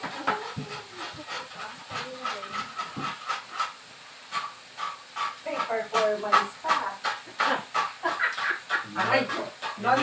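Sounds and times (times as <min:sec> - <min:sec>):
meat sizzling in pans: 0:00.0 - 0:10.0.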